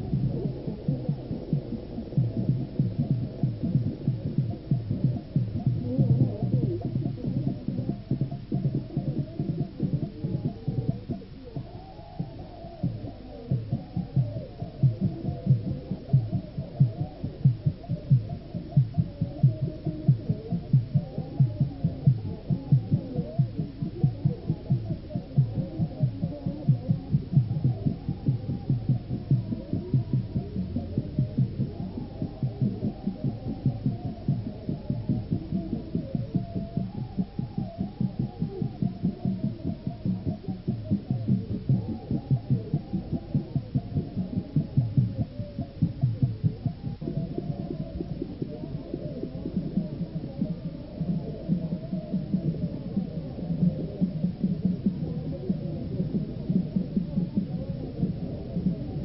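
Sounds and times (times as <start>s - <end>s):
muffled rhythmic drum music: 0.0s - 59.0s.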